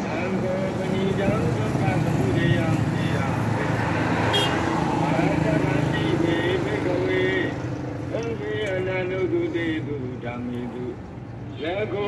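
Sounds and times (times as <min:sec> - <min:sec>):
vehicles passing: 0:00.0 - 0:12.0.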